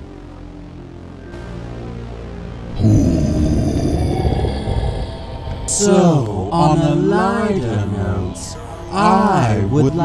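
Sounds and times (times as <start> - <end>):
loud low rumbling: 2.6 - 8.5.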